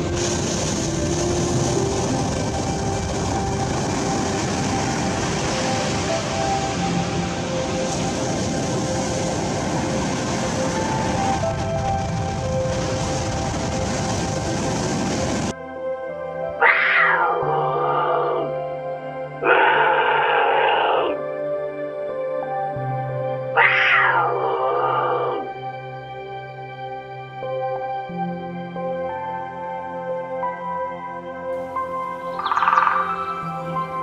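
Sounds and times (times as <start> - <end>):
steady rushing noise: 0.0 - 15.6
soft background music: 0.0 - 34.0
lynx yowling: 16.6 - 18.6, 19.4 - 21.2, 23.6 - 25.5.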